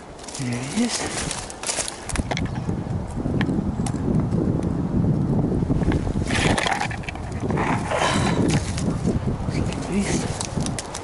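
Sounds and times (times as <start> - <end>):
clothing and twigs rustling: 0.0 - 3.2, 5.7 - 11.0
footsteps in dry undergrowth: 0.0 - 3.2, 8.2 - 9.3
wind rumble on microphone: 0.0 - 11.0
microphone handling noise: 0.3 - 11.0.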